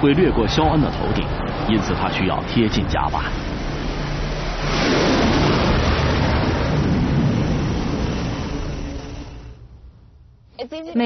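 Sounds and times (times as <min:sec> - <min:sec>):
jet engines at full thrust: 0:00.0 - 0:10.2.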